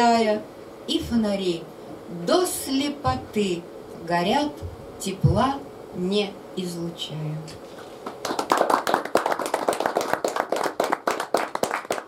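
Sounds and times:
audience applause: 8.0 - 12.0.

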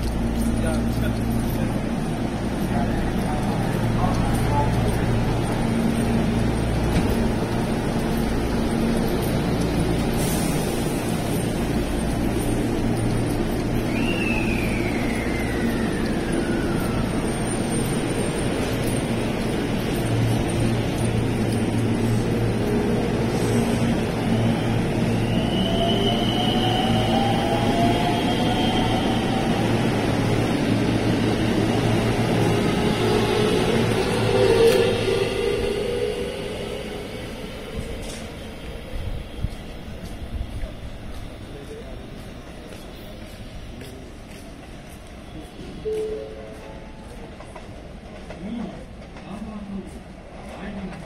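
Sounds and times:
traction motors whining: 0.0 - 41.9
wheels rumbling on rail: 0.0 - 51.0.

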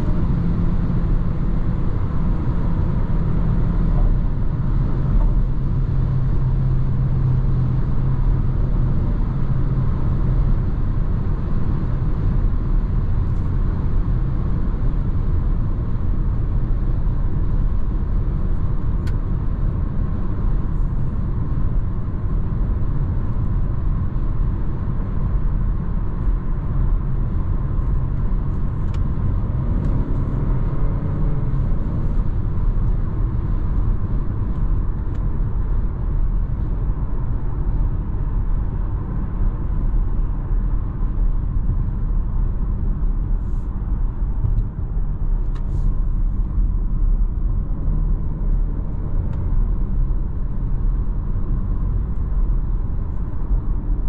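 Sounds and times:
road and tyre rumble: 0.0 - 54.0.

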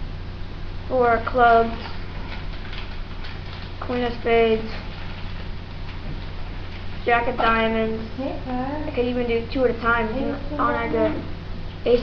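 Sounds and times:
low electrical hum: 0.0 - 12.0
microphone hiss: 0.0 - 12.0.

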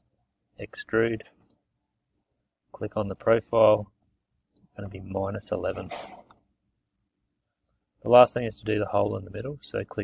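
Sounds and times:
person speaking: 2.6 - 6.5
computer mouse click: 6.2 - 6.5.

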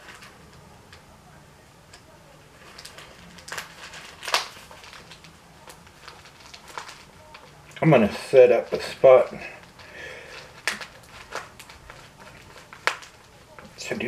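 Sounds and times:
package rustling and scraping: 0.0 - 0.6, 2.4 - 14.0.

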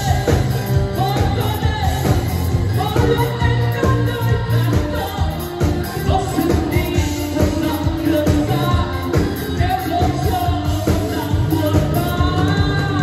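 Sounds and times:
live pop band playing: 0.0 - 13.0
man singing into microphone: 0.0 - 13.0.

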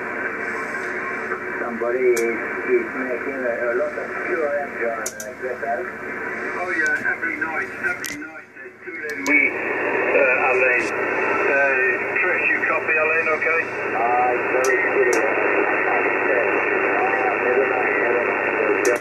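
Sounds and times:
radio band noise hiss: 0.0 - 19.0
person talking over radio: 1.4 - 5.9, 6.5 - 19.0.

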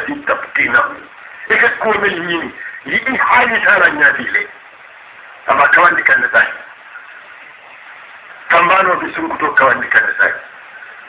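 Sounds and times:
man preaching on radio recording: 0.0 - 4.6, 5.5 - 6.7, 8.5 - 10.5
steady background hiss: 0.0 - 11.0.

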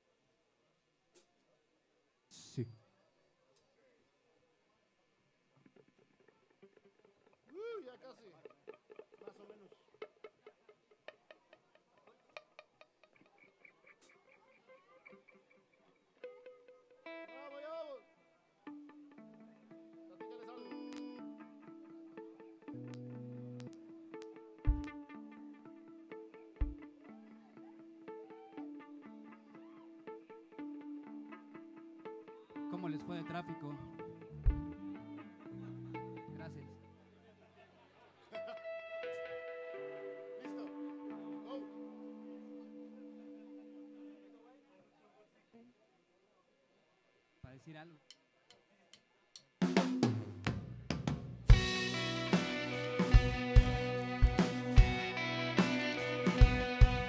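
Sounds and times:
electric guitar through effects: 16.2 - 37.1, 38.4 - 44.5, 51.5 - 57.0
deep thumps: 24.7 - 25.0, 26.6 - 26.8, 34.4 - 34.8.

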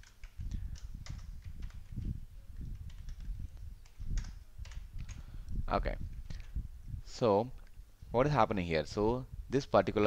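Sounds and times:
computer keyboard typing: 0.0 - 5.2.

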